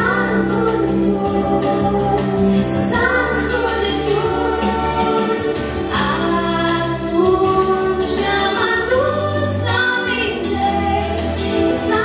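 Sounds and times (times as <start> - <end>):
instrumental accompaniment: 0.0 - 12.0
women singing a carol: 0.0 - 12.0.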